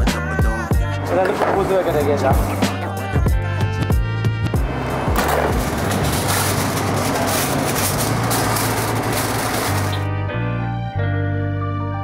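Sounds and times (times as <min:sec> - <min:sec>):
background music with bass line: 0:00.0 - 0:12.0
aluminium foil crinkling: 0:05.2 - 0:10.0.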